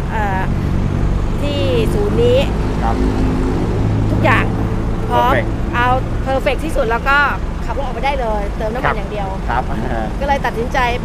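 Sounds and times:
low engine-like hum: 0:00.0 - 0:11.0
man speaking: 0:02.7 - 0:03.3, 0:05.1 - 0:05.5, 0:08.8 - 0:10.2.

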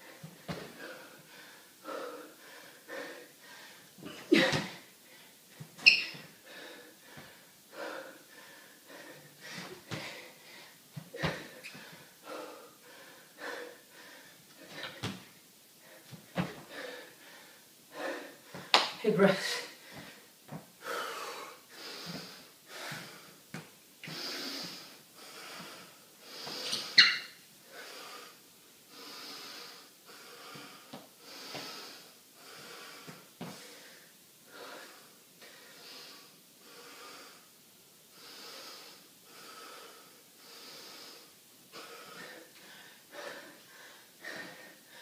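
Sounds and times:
man breathing hard through nose: 0:00.0 - 0:04.0, 0:06.2 - 0:15.2, 0:15.8 - 0:18.8, 0:19.7 - 0:23.4, 0:24.0 - 0:27.0, 0:27.6 - 0:37.5, 0:38.1 - 0:45.0.

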